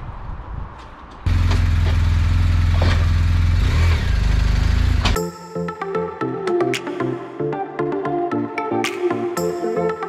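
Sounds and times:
motorcycle engine running: 1.3s - 5.2s.

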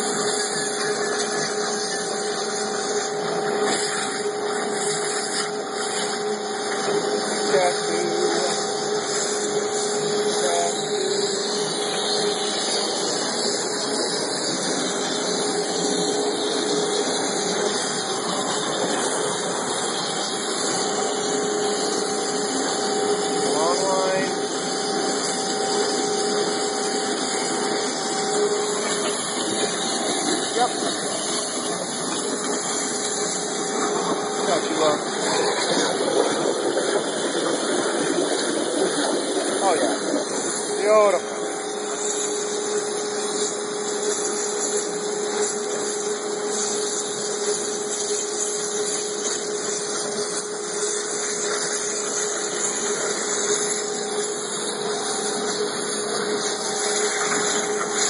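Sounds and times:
steady tones: 0.0s - 58.0s
waterjet cutting machine hissing: 0.0s - 58.0s.

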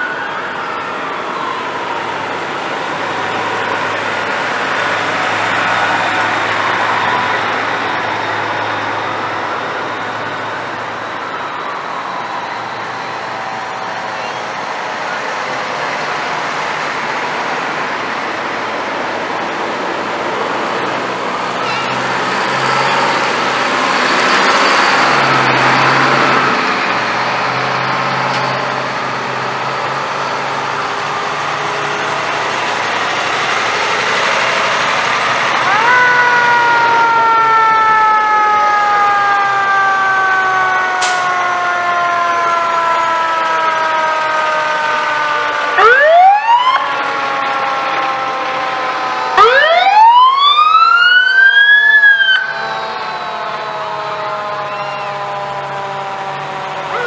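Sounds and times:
fire truck engines running: 0.0s - 57.0s
rising siren wails: 0.0s - 57.0s.

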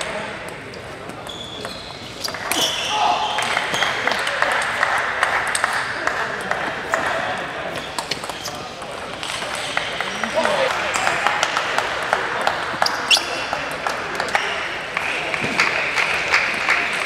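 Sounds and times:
voices in a hall: 0.0s - 17.0s.

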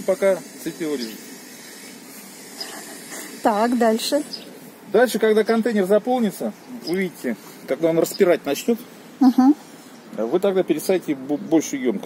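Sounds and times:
faint outdoor hiss: 0.0s - 12.0s.

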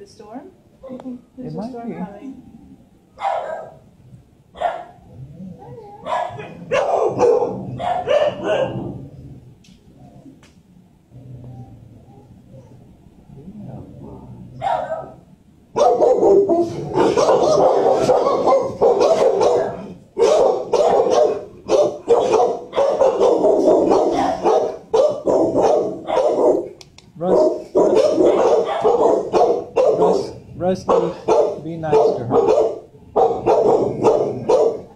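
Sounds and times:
dogs barking loudly: 3.2s - 5.1s, 6.0s - 9.2s, 14.6s - 34.9s.

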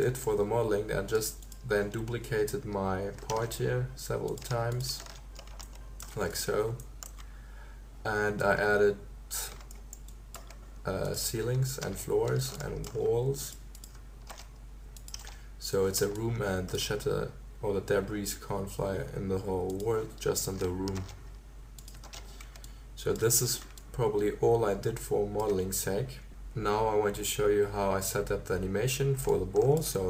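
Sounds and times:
low steady hum: 0.0s - 30.0s
keyboard and mouse clicks: 1.2s - 3.6s, 4.2s - 7.3s, 9.4s - 11.2s, 11.8s - 15.4s, 19.6s - 21.2s, 21.8s - 23.9s.

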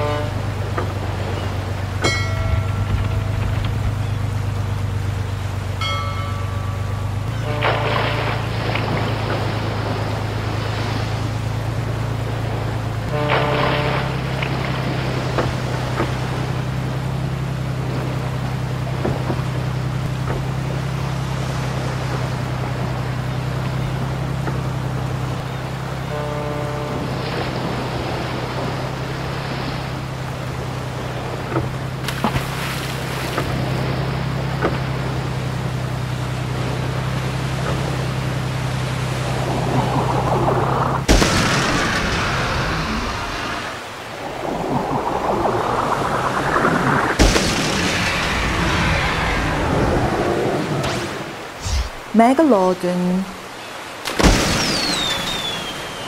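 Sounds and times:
sea water wash: 0.0s - 56.0s
ship engine drone: 0.0s - 56.0s.

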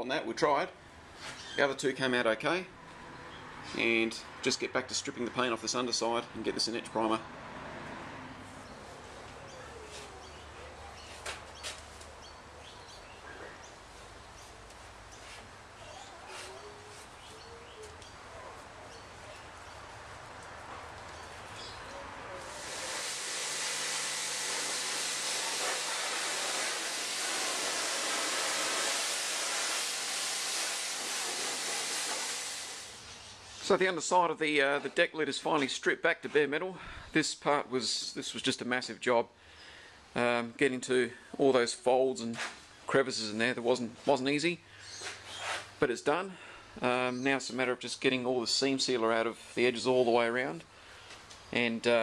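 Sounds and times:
loud steady hiss: 22.4s - 33.8s.

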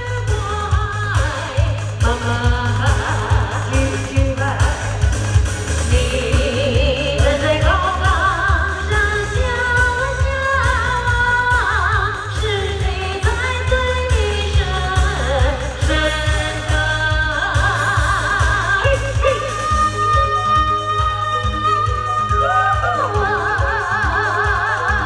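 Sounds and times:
woman singing with vibrato: 0.0s - 5.2s, 5.8s - 25.0s
backing track with bass beat: 0.0s - 25.0s.

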